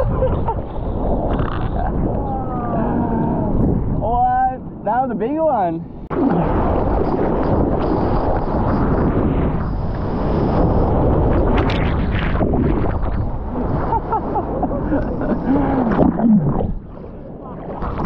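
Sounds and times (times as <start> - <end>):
wind on microphone: 0.0 - 4.9, 5.8 - 18.0.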